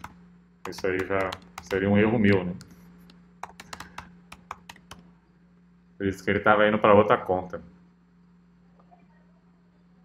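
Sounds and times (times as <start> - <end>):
typing on computer keyboard: 0.0 - 2.4, 3.4 - 5.1.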